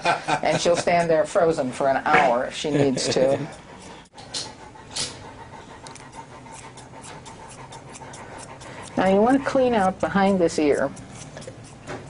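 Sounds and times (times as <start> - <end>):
dog panting: 0.6 - 12.0.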